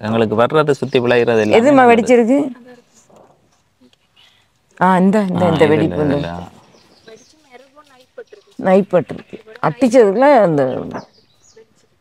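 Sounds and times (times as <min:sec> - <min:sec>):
person's voice loud and close: 0:05.3 - 0:06.4.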